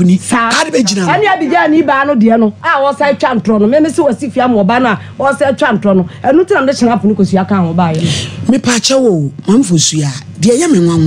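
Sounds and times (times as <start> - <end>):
woman talking: 0.3 - 8.2.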